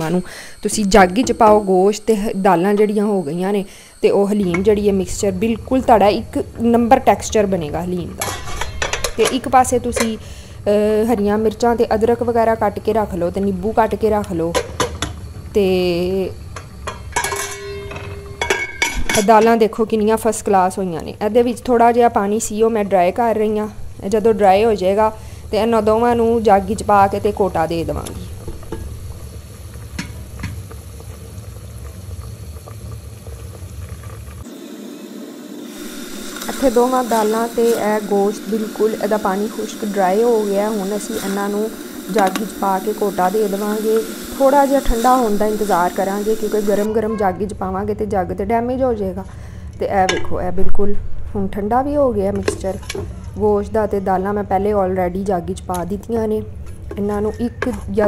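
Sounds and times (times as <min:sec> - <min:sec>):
pot simmering and bubbling: 0:23.9 - 0:46.9
utensil scraping metal pot: 0:35.8 - 0:46.9.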